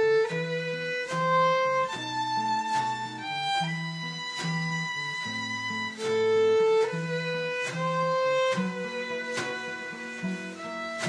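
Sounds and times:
acoustic guitar notes: 0.0s - 11.0s
violin playing long notes: 0.0s - 11.0s.

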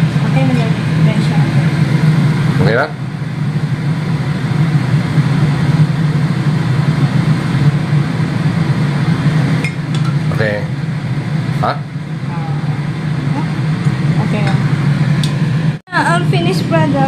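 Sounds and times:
kitchen fan humming: 0.0s - 17.0s.

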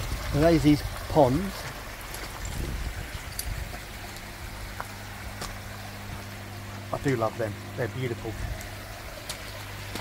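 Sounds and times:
steady low hum: 0.0s - 10.0s
water trickling and splashing: 0.0s - 10.0s.

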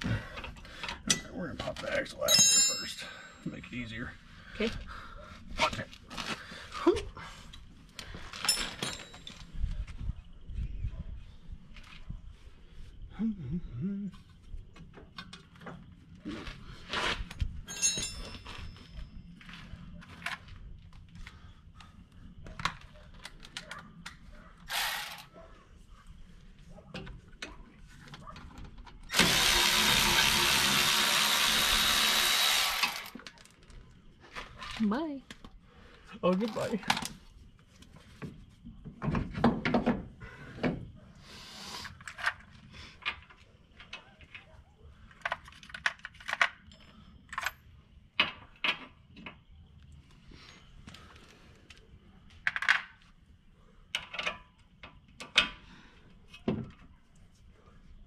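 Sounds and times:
metal tools clinking and knocking: 0.3s - 3.9s, 8.3s - 9.6s, 17.6s - 19.2s.

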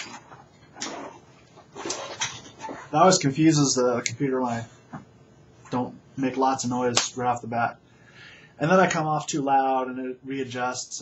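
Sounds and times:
person rustling and shuffling: 0.0s - 3.2s.

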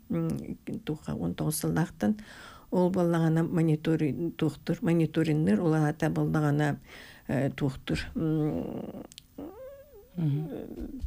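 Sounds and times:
woman humming wordless sounds: 7.3s - 11.0s.

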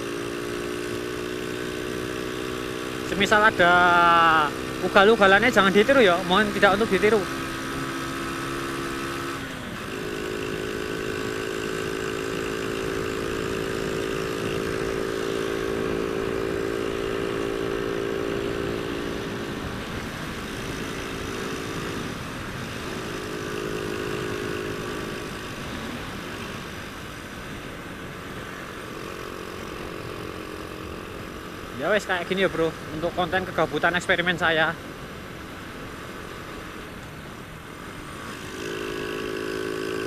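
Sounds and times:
motorcycle engine revving high: 0.0s - 40.0s
rushing wind: 0.0s - 40.0s.

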